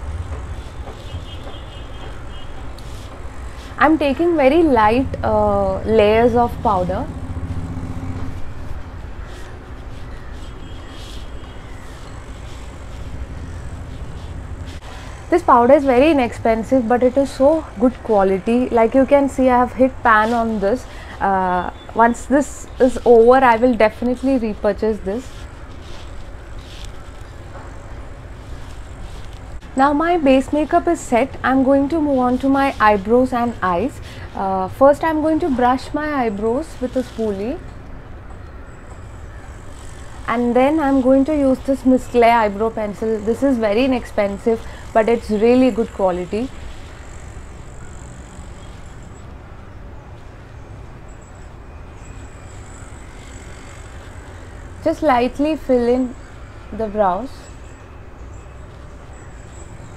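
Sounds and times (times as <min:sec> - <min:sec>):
faint high whine: 0:00.0 - 0:59.9
low rumble: 0:03.7 - 0:09.1.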